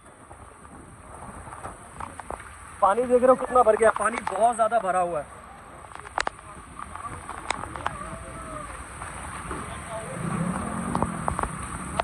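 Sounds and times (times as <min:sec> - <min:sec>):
heavy rain: 0:00.0 - 0:12.0
vehicle engine revving: 0:09.9 - 0:12.0.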